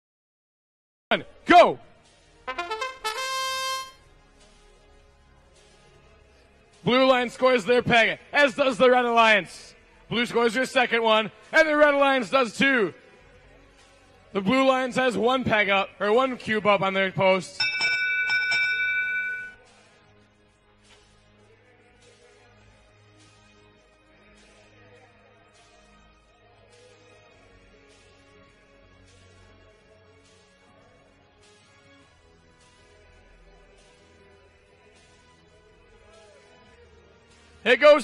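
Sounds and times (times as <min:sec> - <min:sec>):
trumpet fanfare over loudspeakers: 0:02.5 - 0:04.0
electronic bell-like signal tone: 0:17.6 - 0:19.6.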